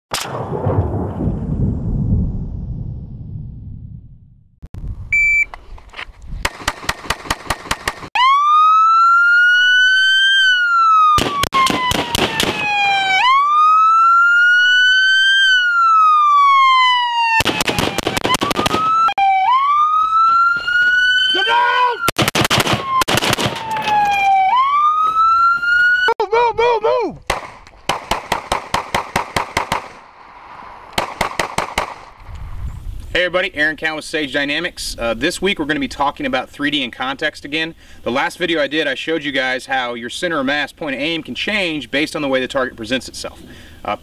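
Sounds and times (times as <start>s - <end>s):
short beep: 5.1s - 5.6s
police siren wailing and pulsing: 8.2s - 26.2s.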